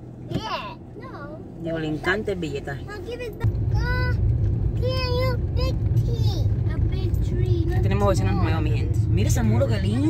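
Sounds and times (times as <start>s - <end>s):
car driving rumble from inside: 0.0s - 10.0s.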